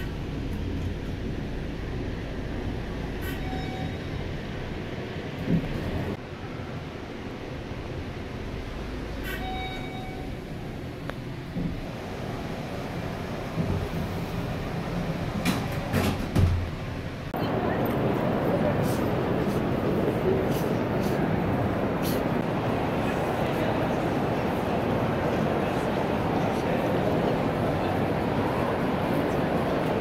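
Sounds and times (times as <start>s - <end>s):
low rumble of shopping mall: 0.0s - 30.0s.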